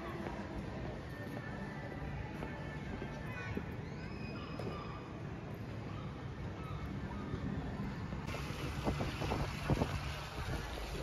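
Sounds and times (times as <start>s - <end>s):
outdoor street background noise: 0.0s - 11.0s
wind rumble on microphone: 7.2s - 11.0s.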